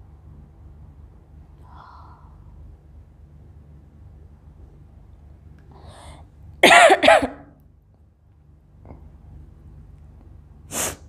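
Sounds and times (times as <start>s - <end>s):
woman coughing: 6.6s - 7.5s.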